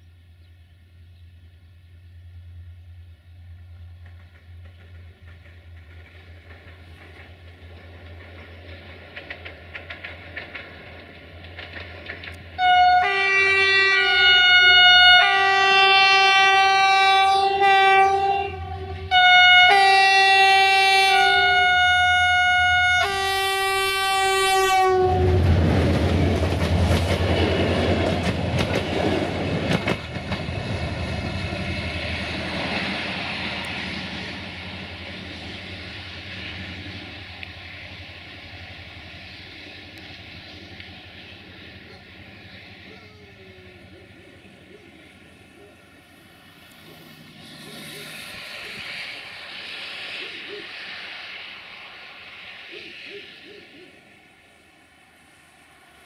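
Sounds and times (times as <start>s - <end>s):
locomotive engine rumbling: 0.0s - 56.0s
wheels clacking over rails: 3.8s - 12.7s, 25.4s - 43.2s
train horn blasts: 12.6s - 25.6s.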